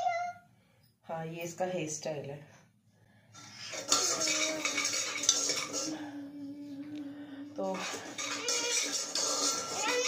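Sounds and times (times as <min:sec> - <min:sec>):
metal utensils clattering on pots: 0:03.4 - 0:06.1, 0:07.6 - 0:10.0.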